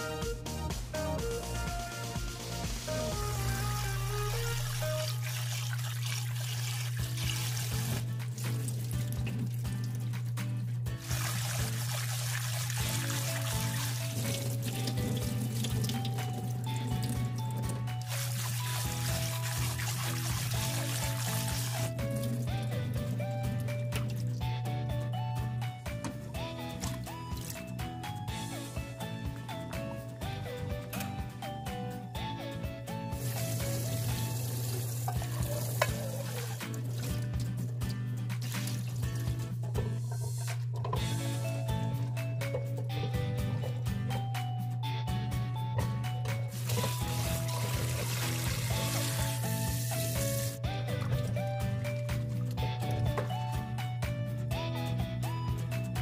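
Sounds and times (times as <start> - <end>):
background music with held notes: 0.0 - 56.0
tap water running into bowl: 5.0 - 10.2, 11.0 - 24.5, 33.2 - 41.3, 46.5 - 51.2.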